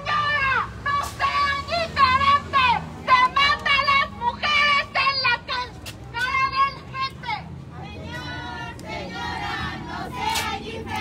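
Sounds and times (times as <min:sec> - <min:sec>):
women chanting slogan: 0:00.0 - 0:11.0.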